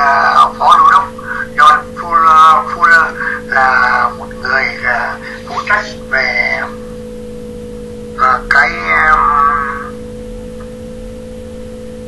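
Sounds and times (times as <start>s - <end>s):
person speaking: 0.0s - 6.9s, 8.2s - 10.1s
steady low hum: 0.0s - 12.0s.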